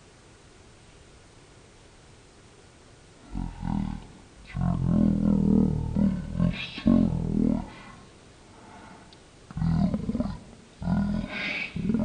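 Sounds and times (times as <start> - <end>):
deep roaring growls: 9.6 - 12.0.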